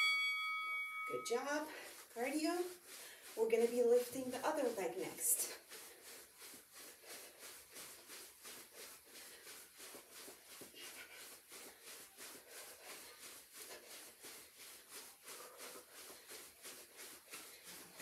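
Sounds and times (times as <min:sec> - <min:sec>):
faint footfalls on carpet: 0:01.3 - 0:18.0.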